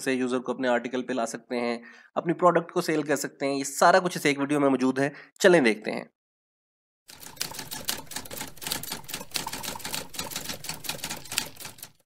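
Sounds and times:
typewriter key clatter: 7.1s - 12.0s.

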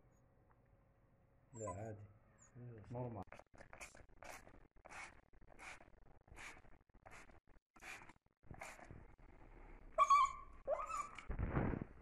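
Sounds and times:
puppy whining: 1.6s - 2.6s, 10.0s - 11.3s.

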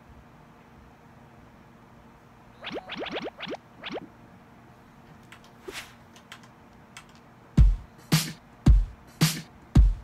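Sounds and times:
rising electronic boing sweeps: 2.6s - 4.1s.

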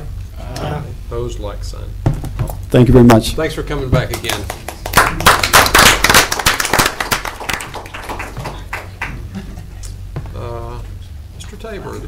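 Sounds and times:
small group applauding: 4.1s - 9.7s.

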